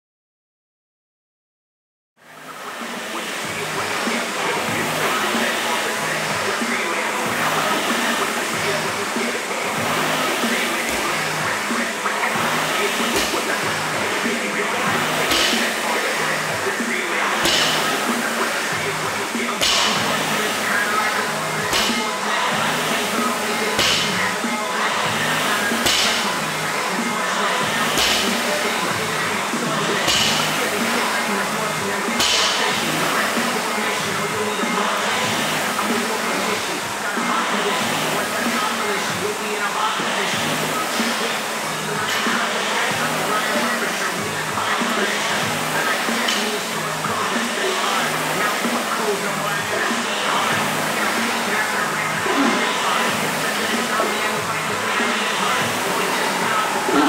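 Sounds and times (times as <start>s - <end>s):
room noise: 2.2s - 57.0s
background music: 2.3s - 57.0s.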